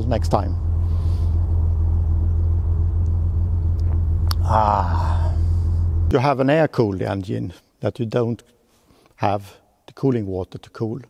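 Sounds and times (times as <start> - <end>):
vehicle engine idling: 0.0 - 6.1.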